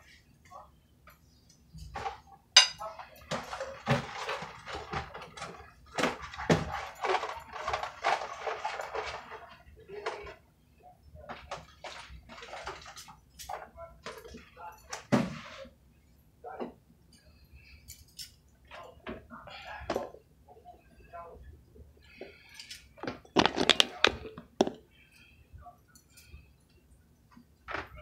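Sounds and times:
paper and plastic rustling: 2.9 - 10.4, 11.2 - 15.7, 22.3 - 24.8.

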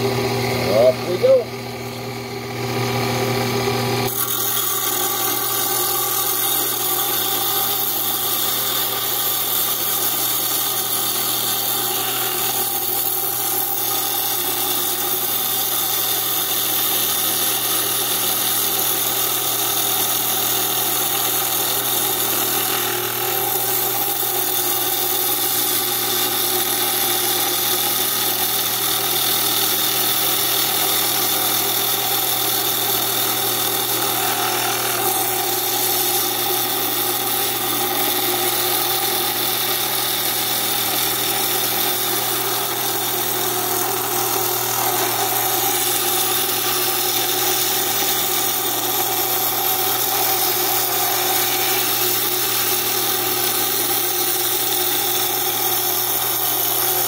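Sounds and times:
motor hum: 0.0 - 18.1, 30.8 - 57.0
saw blade grinding through stone: 0.0 - 57.0.

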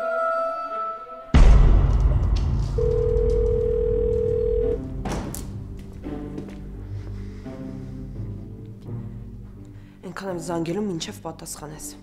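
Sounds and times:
telephone ringing tone beep: 2.8 - 4.8.

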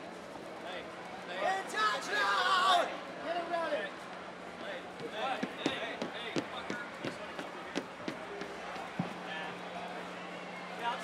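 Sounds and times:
footsteps on stage decking: 5.0 - 9.4.

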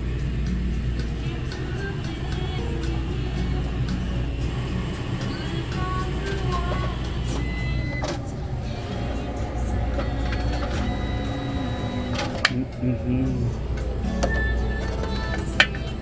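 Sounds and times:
background music: 0.0 - 16.0
printer humming: 0.0 - 16.0.

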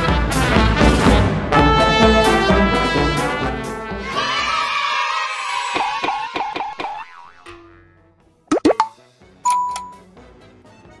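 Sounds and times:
springy falling boing sounds: 6.3 - 7.9.

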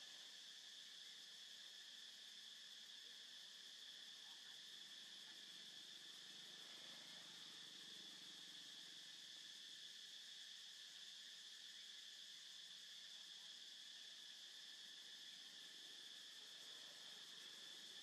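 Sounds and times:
insects droning: 0.0 - 18.0.

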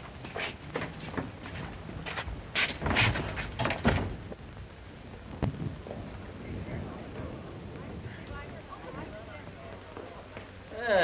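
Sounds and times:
film soundtrack hiss: 0.0 - 11.0
knocks and thuds of people moving: 0.3 - 4.4.

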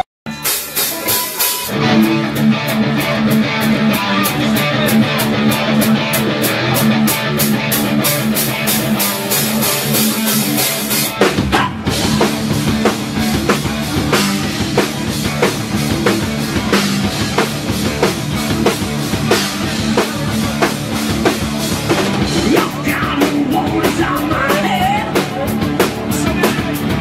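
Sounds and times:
live rock band playing: 0.0 - 27.0.

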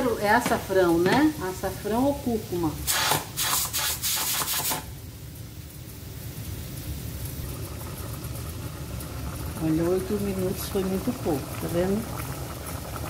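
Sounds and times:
pressure cooker steam hissing: 0.0 - 5.0, 5.6 - 13.0
low rumbling from pot: 4.9 - 13.0.

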